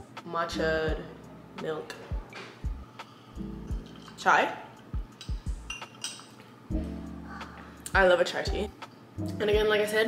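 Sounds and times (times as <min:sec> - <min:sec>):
background music: 0:00.0 - 0:10.0
glass cup clinking: 0:03.8 - 0:04.2, 0:05.2 - 0:06.4.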